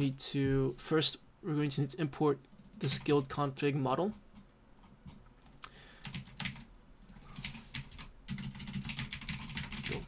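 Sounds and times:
typing on a computer keyboard: 2.5 - 3.4, 6.0 - 10.0.

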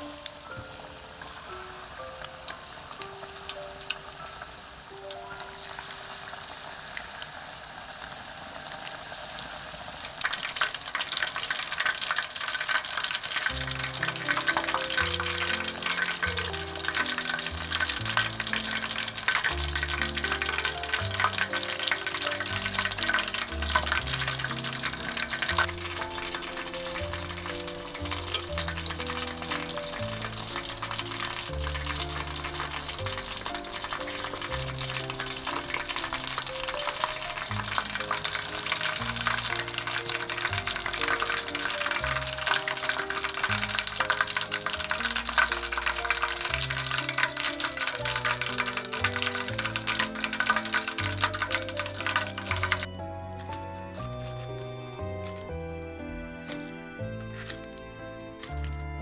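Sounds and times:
soft background music: 0.0 - 7.4, 11.8 - 59.0
shrimp deep-frying in oil: 0.0 - 55.1.

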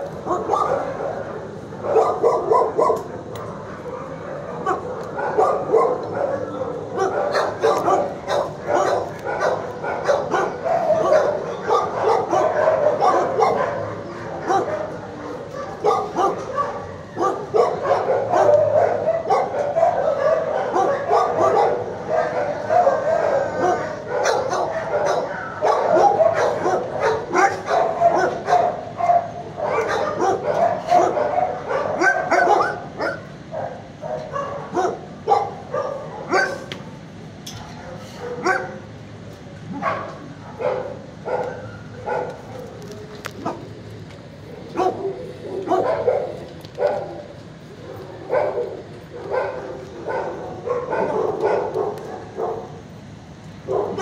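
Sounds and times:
many dogs barking and yipping: 0.0 - 54.0.

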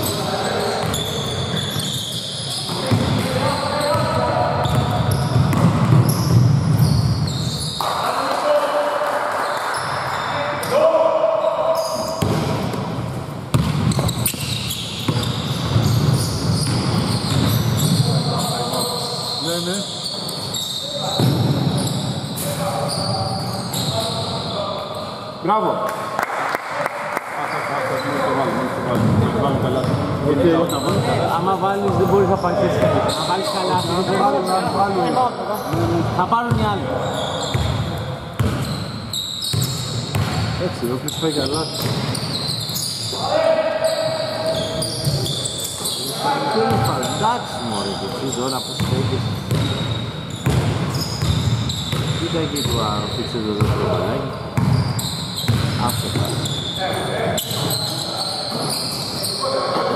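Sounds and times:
basketball bouncing on hardwood: 4.7 - 6.9, 13.5 - 14.2.

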